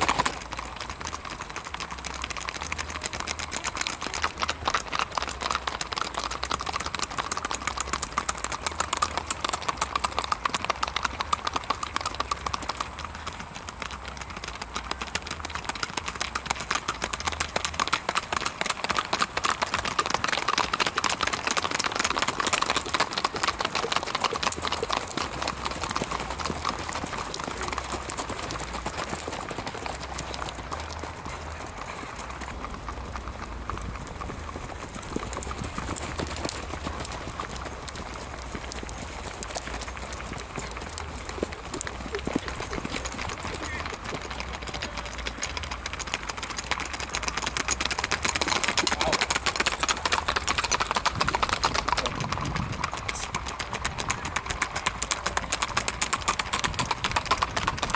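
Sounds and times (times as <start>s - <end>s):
horse hoofbeats clip-clop: 0.0s - 57.9s.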